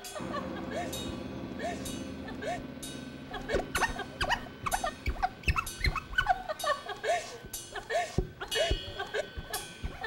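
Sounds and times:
high squeaky chirps: 3.4s - 6.8s.

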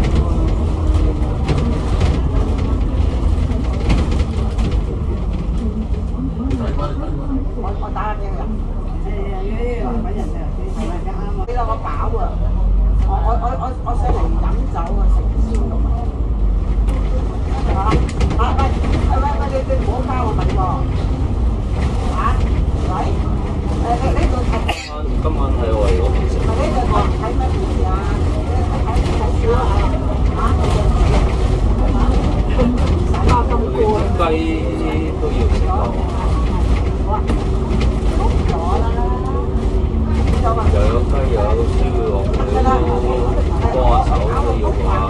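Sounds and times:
bus engine rumbling: 0.0s - 45.0s
passenger chatter: 0.0s - 45.0s.

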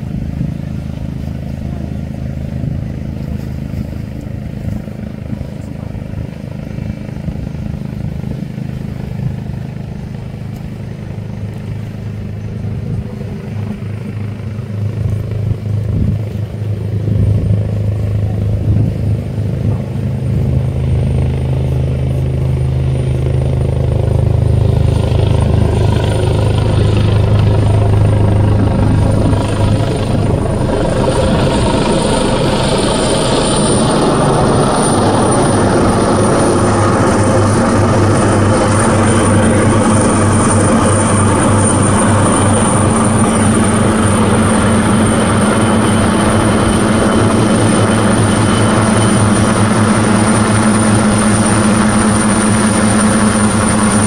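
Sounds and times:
low engine drone: 0.0s - 54.0s.

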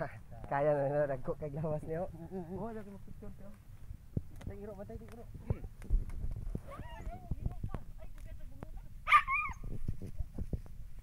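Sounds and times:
dog yelp: 9.0s - 9.6s.

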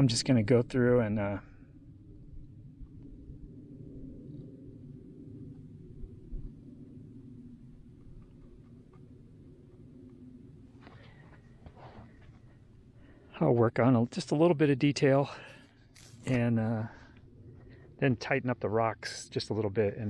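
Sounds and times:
low rumble: 0.0s - 13.8s.

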